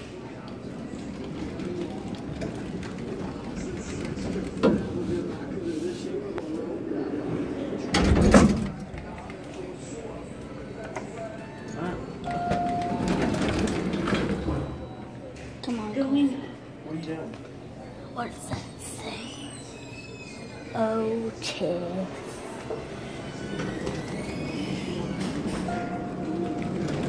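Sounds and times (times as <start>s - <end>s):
indistinct talking: 0.0s - 27.0s.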